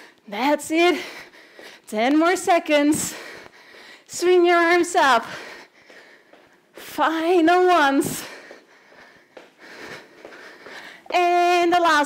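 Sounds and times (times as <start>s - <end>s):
woman breathing hard: 0.0s - 1.9s, 2.8s - 4.2s, 5.0s - 6.9s, 7.8s - 11.1s
woman's voice: 0.3s - 1.2s, 1.9s - 3.3s, 4.1s - 5.5s, 6.8s - 8.4s, 11.1s - 12.0s.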